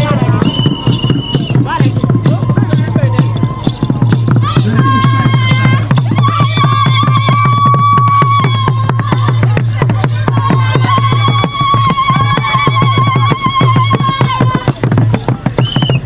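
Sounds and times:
fast dance drumming: 0.0 - 16.0.

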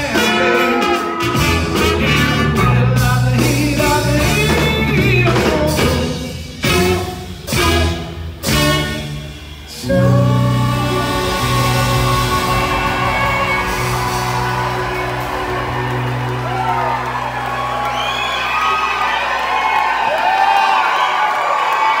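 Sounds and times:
live band final chord: 0.0 - 19.6
audience cheering: 10.8 - 22.0
whoops: 13.5 - 22.0.

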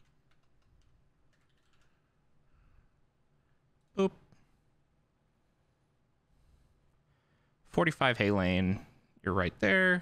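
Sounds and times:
faint keyboard typing: 0.0 - 2.2.

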